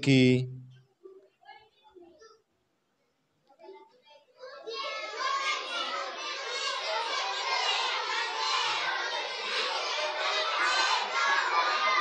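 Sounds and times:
children talking and calling out: 0:00.7 - 0:12.0.

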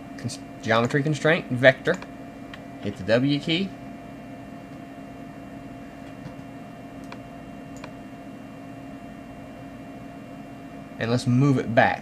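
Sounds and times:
room hum with steady tones: 0:00.0 - 0:12.0.

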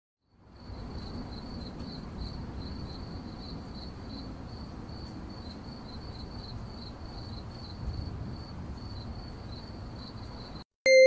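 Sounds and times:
crickets chirping: 0:00.3 - 0:10.6.

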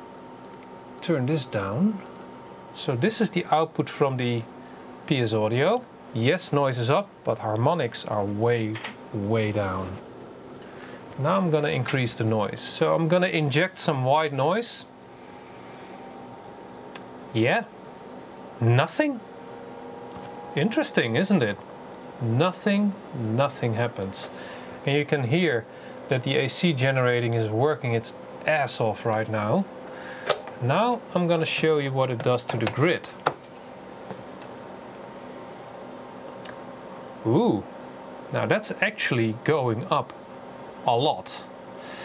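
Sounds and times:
faint hum: 0:00.0 - 0:42.0
white noise: 0:00.0 - 0:42.0.

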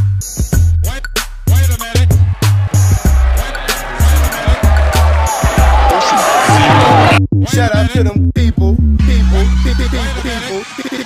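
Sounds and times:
deep bass beat: 0:00.0 - 0:10.1.

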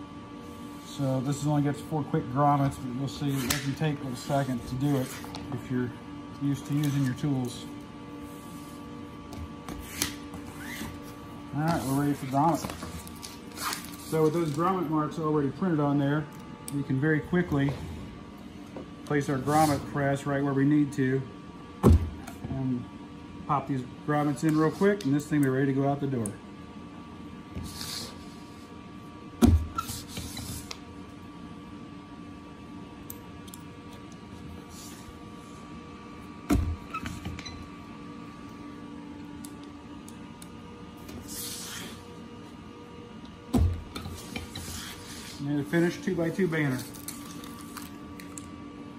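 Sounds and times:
steady background hum: 0:00.0 - 0:48.9
vinyl rustling on table: 0:08.2 - 0:14.8
fingers rubbing vinyl: 0:09.7 - 0:11.0.

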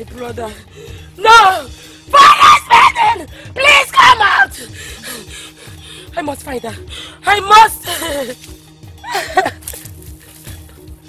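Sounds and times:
woman screaming: 0:01.2 - 0:04.7.

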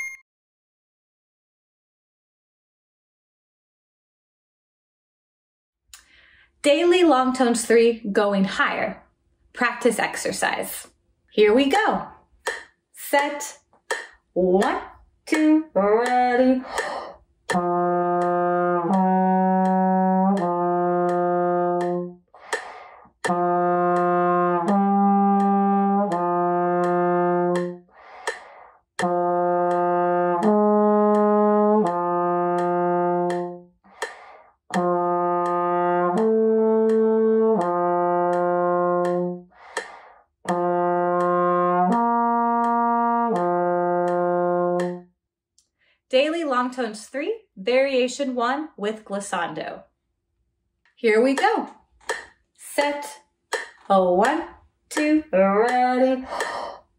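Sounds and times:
short breaths: 0:06.0 - 0:06.6, 0:22.3 - 0:23.1, 0:27.9 - 0:28.8, 0:33.9 - 0:34.6, 0:39.5 - 0:40.3, 0:45.7 - 0:46.1
trombone playing held notes: 0:17.5 - 0:22.6, 0:23.3 - 0:27.9, 0:29.0 - 0:33.7, 0:34.7 - 0:39.5, 0:40.5 - 0:45.0.

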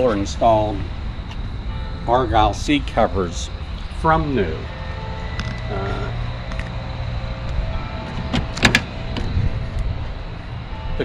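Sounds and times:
steady low rumble: 0:00.0 - 0:11.0
car door opening: 0:07.9 - 0:09.5.

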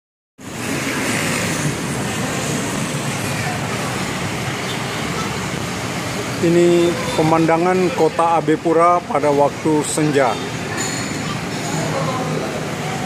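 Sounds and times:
street traffic: 0:00.4 - 0:13.0.

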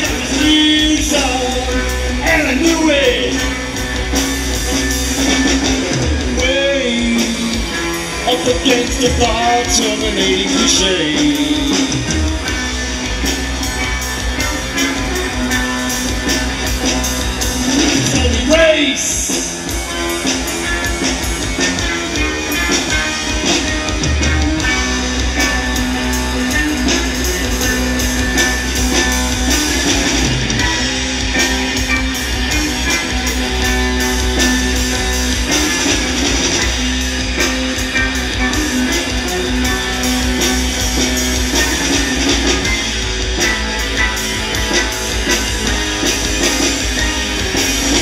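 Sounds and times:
drum kit playing: 0:00.0 - 0:48.0.

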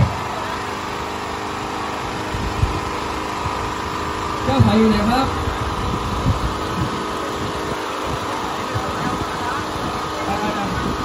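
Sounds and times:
crowd voices: 0:00.0 - 0:11.0
steady mechanical hum: 0:00.0 - 0:11.0.

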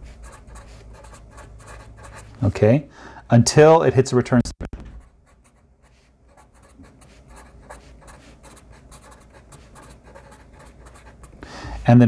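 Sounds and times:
marker scratching on paper: 0:00.0 - 0:02.5, 0:05.0 - 0:12.0.

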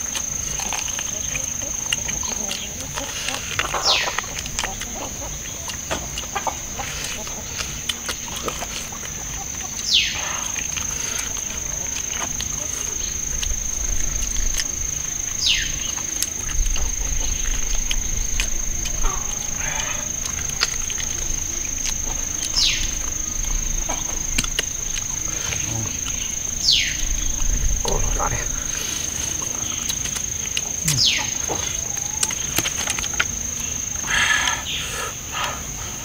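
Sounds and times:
people chewing ribs: 0:00.0 - 0:36.0
steady high drone: 0:00.0 - 0:36.0.

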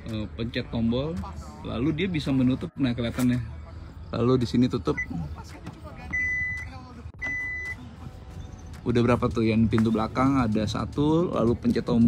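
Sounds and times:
high warning beeps: 0:04.5 - 0:05.3, 0:06.0 - 0:08.7.

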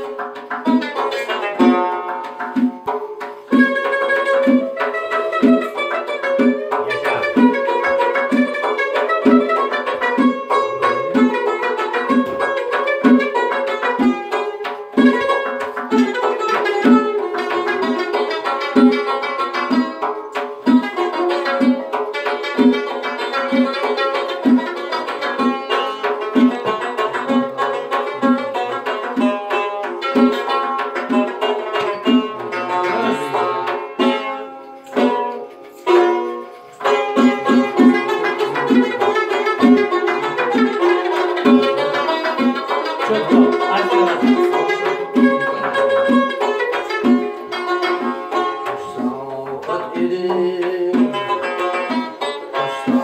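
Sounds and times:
long-necked lute playing: 0:00.0 - 0:53.0.

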